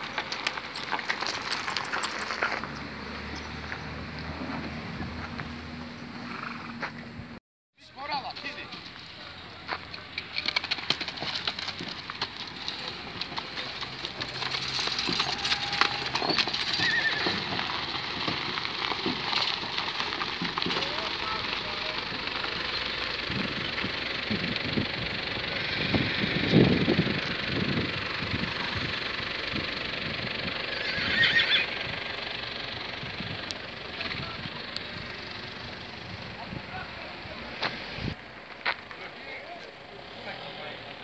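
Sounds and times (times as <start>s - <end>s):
hooves on gravel: 0.0s - 5.7s, 8.0s - 29.9s, 36.7s - 39.8s
horse whinnying: 14.9s - 17.6s, 30.7s - 31.8s.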